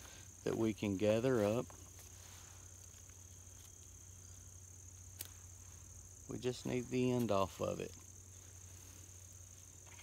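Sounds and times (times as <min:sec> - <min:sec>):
high-pitched insect song: 0:00.0 - 0:10.0.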